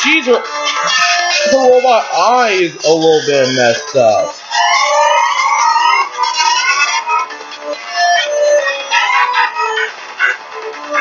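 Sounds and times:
wavering electronic siren tones: 3.8s - 9.9s.

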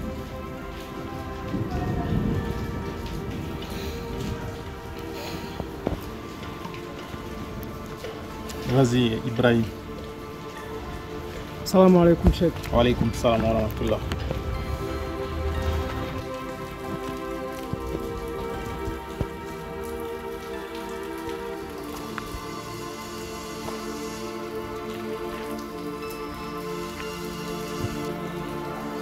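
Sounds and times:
soft held chords music: 0.0s - 29.0s
steady hiss: 0.0s - 29.0s.

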